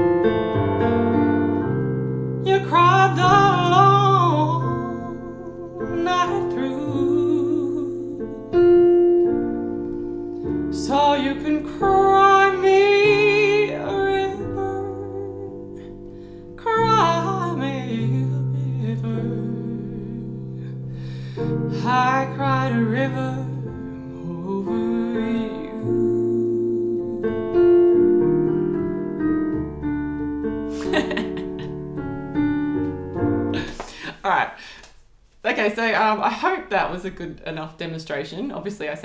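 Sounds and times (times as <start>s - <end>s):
digital piano chords: 0.0s - 34.1s
woman singing a jazz ballad: 2.4s - 8.8s, 10.7s - 15.9s, 16.6s - 20.8s, 21.4s - 27.6s.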